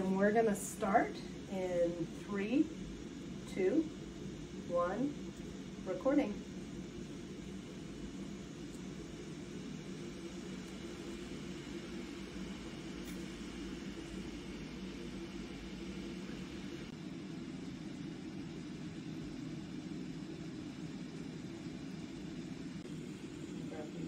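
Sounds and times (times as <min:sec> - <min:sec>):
low rumbling room hum: 0:00.0 - 0:24.0.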